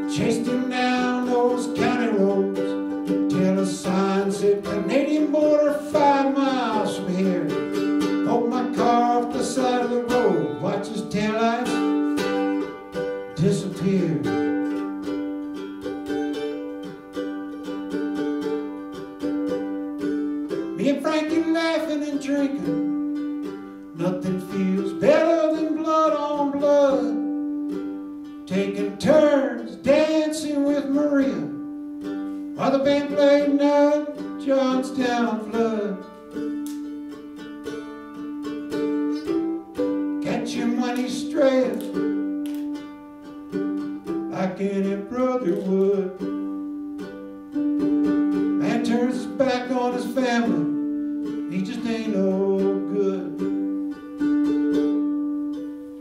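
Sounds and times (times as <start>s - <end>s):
ukulele playing: 0.0s - 56.0s.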